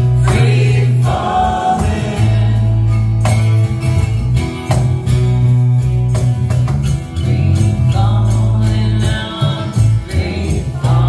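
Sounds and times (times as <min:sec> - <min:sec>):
electric bass notes: 0:00.0 - 0:11.0
strummed acoustic guitar: 0:00.0 - 0:11.0.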